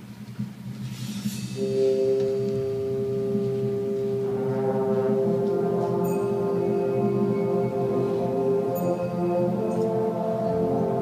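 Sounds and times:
concert band sustained chord: 1.2s - 11.0s.

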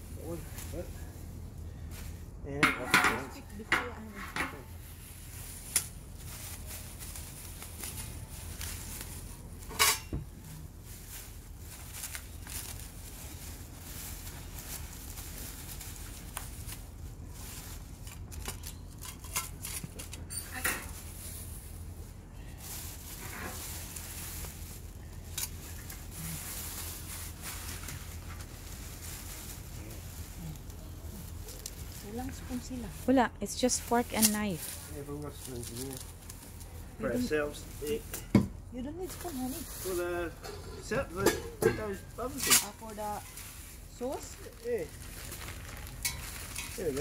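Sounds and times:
steady low rumble: 0.0s - 2.6s
cutlery clinking and rattling: 18.3s - 21.0s.

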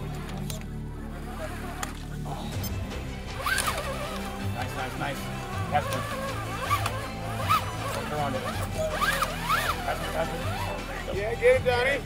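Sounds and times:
electric motor whining: 0.0s - 11.8s
background music: 0.0s - 12.0s.

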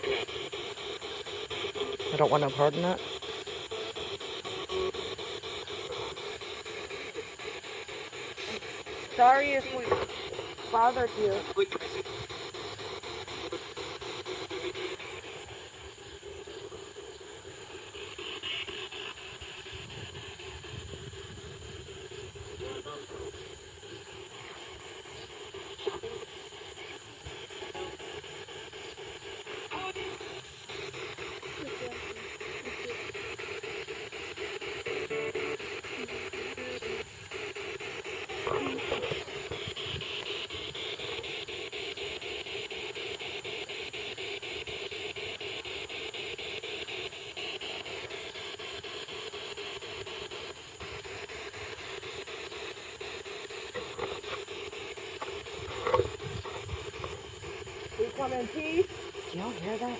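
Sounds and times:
constant low hum: 0.0s - 59.9s
hiss-like high drone: 0.0s - 59.9s.

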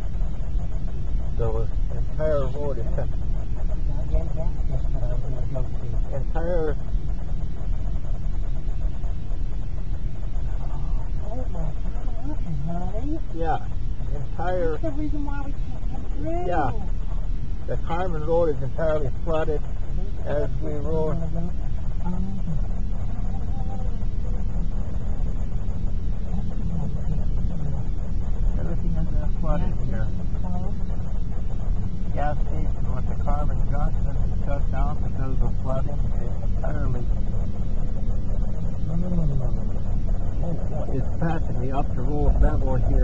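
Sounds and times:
car cabin road rumble: 0.0s - 43.0s.

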